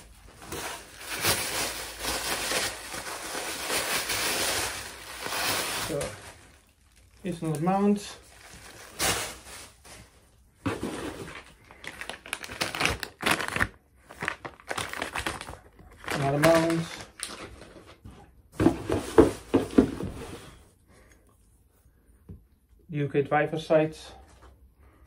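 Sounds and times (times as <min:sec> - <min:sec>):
plastic packaging crinkling: 0:00.0 - 0:18.0.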